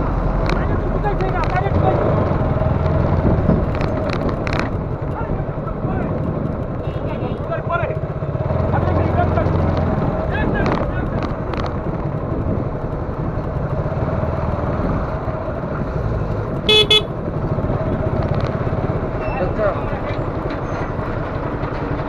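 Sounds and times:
motorcycle engine running: 0.0 - 22.0
road rumble: 0.0 - 22.0
vehicle horn toots: 16.7 - 17.2.

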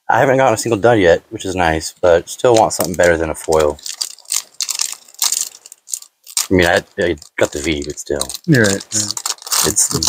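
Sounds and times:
foil wrapper crinkling: 2.5 - 10.0.

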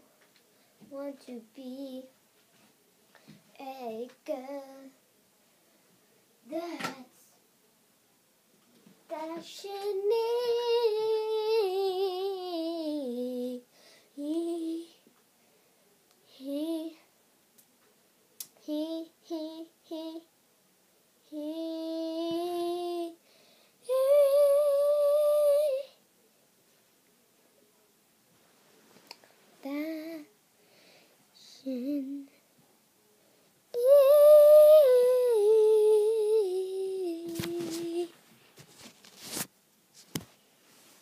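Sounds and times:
girl singing unaccompanied: 0.8 - 2.2, 3.2 - 5.0, 6.4 - 7.4, 9.0 - 15.2, 16.2 - 17.2, 18.4 - 20.4, 21.2 - 26.1, 29.1 - 30.4, 31.3 - 32.6, 33.7 - 38.2.

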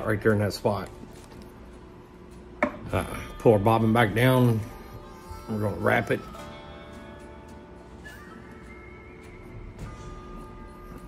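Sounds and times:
faint handling sounds: 0.2 - 2.6.

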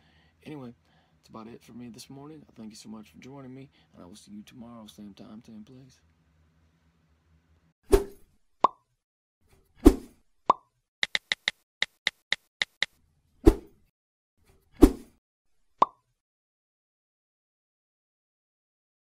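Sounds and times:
sharp clicks: 11.0 - 12.9.

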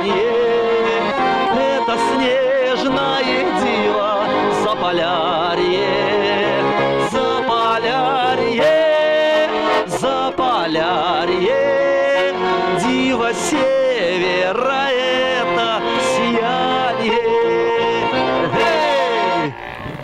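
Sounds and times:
man singing with vibrato: 0.0 - 19.6
button accordion folk tune: 0.0 - 20.0.

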